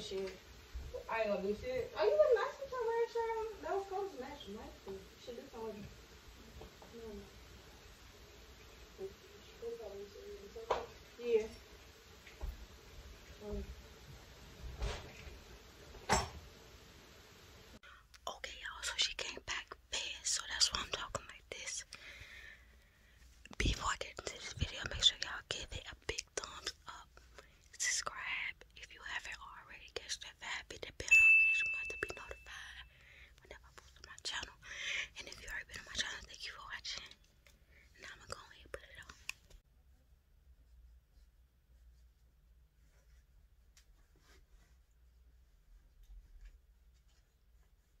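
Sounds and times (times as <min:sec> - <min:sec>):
woman whispering: 0:17.9 - 0:22.0, 0:23.4 - 0:31.1, 0:31.8 - 0:37.2, 0:37.9 - 0:39.4.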